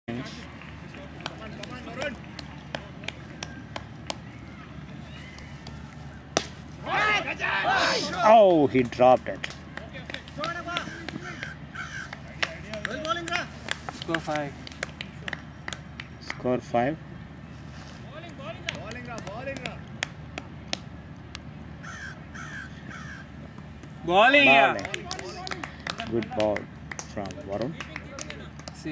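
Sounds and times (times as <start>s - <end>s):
outdoor background noise: 0.1s - 28.9s
steady low background noise: 0.1s - 28.9s
bird calling: 10.7s - 12.3s, 21.8s - 23.5s.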